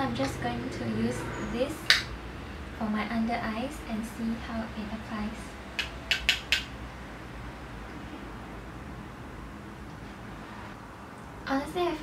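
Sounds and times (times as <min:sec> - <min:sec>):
brush tapping plastic compact: 0:05.8 - 0:06.7.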